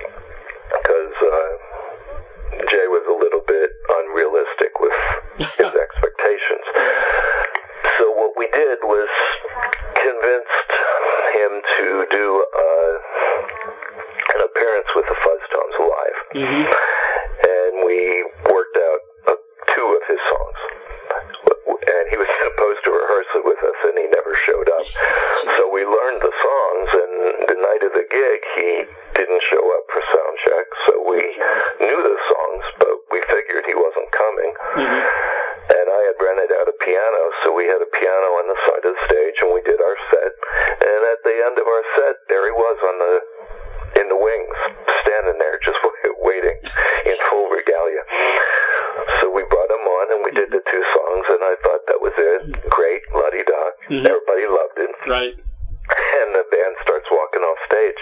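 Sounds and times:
man talking over telephone: 0.0 - 58.0.

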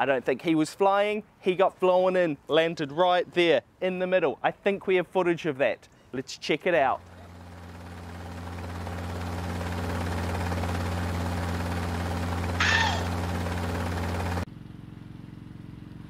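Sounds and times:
helicopter rotor and engine: 6.8 - 15.0
high falling cry: 12.5 - 13.2.

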